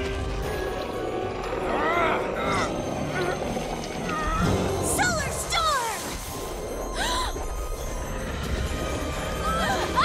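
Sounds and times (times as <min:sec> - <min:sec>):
action background music: 0:00.0 - 0:10.0.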